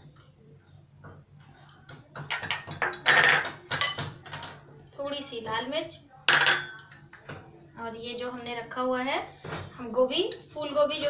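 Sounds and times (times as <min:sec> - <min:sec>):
metal spoon clinking on glass bowl: 0:01.7 - 0:03.0, 0:05.9 - 0:07.2.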